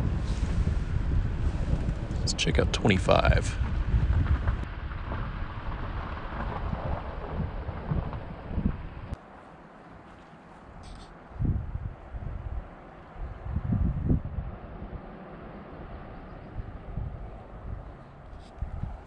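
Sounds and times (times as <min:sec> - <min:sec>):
wind buffeting microphone: 0:00.0 - 0:09.2, 0:10.7 - 0:19.0
short low wind gusts: 0:00.0 - 0:19.0.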